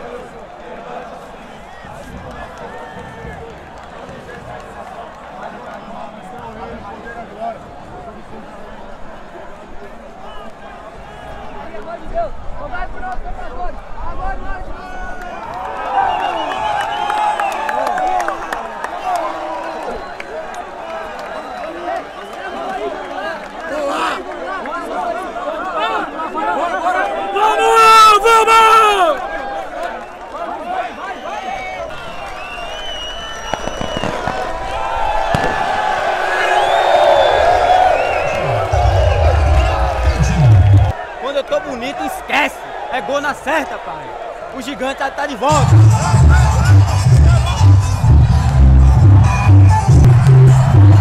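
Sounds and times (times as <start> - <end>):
crowd shouting and chanting: 0.0 - 51.0
loud high shout: 25.7 - 29.7.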